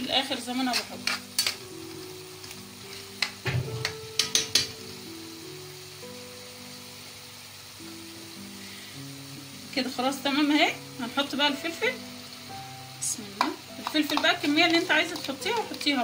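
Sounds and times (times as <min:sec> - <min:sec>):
liver sizzling in a pan: 0:00.0 - 0:16.0
metal spoon knocking pan: 0:03.2 - 0:04.8, 0:13.4 - 0:16.0.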